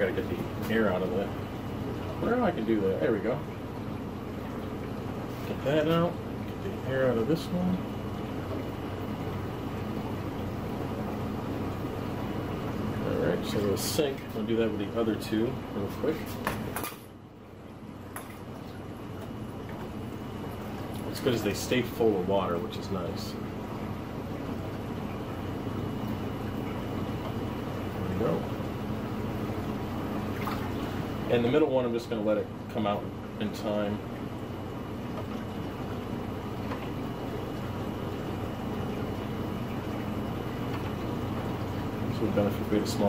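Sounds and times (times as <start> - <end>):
aquarium pumps humming: 0.0 - 43.0
water sloshing and bubbling: 0.0 - 43.0
splash in water: 30.3 - 30.8.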